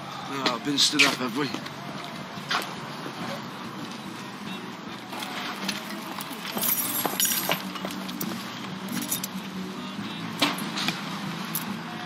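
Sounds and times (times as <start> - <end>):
low street hum: 0.0 - 12.0
keyring clicking and jingling: 6.4 - 7.6, 8.9 - 9.3.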